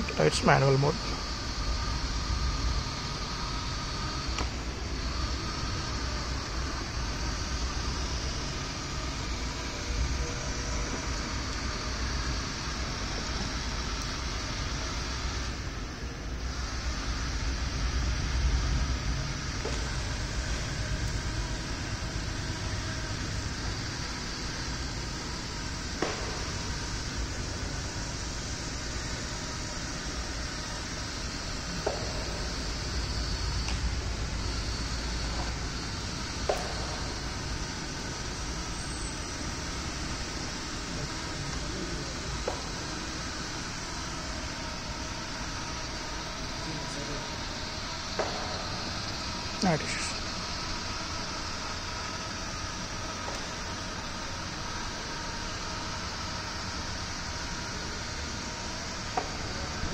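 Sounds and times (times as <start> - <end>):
low motor hum: 0.0 - 59.9.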